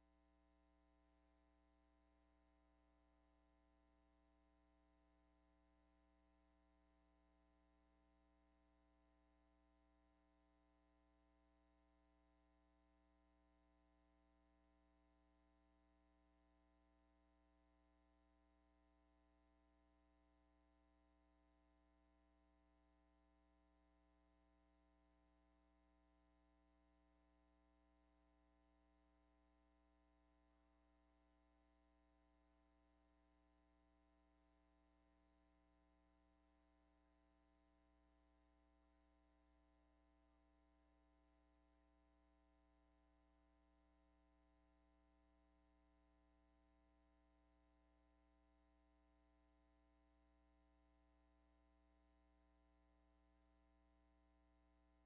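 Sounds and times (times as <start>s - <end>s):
faint steady hum: 0.0s - 55.0s.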